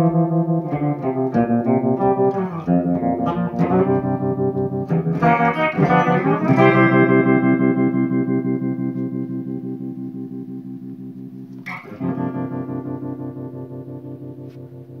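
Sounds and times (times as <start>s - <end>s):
electric guitar chords pulsing: 0.0s - 15.0s.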